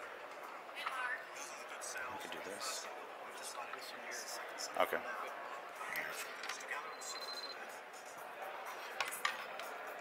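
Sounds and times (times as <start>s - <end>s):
faint high beep: 6.9s - 7.6s.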